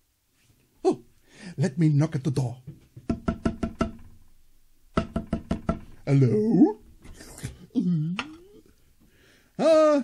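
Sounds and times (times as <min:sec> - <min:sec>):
knocking on door: 0:03.0 - 0:04.2, 0:04.9 - 0:06.1.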